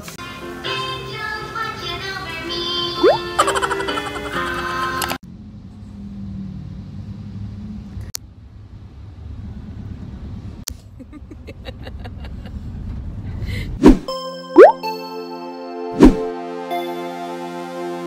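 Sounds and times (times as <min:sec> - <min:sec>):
vehicle rumble inside cabin: 0:05.0 - 0:13.8
bright music track: 0:14.1 - 0:18.0.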